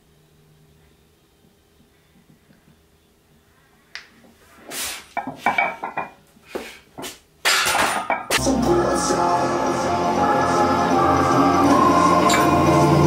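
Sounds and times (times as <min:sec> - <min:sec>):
music: 0:08.4 - 0:13.0.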